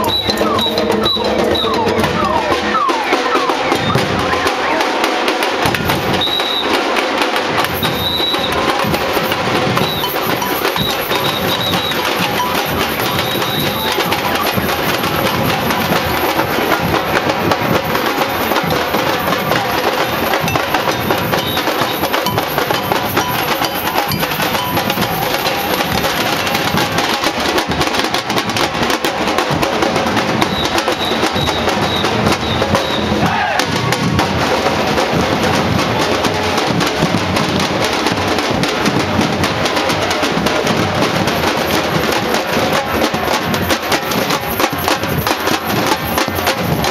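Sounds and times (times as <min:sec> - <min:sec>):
percussion band drumming: 0:00.0 - 0:46.9.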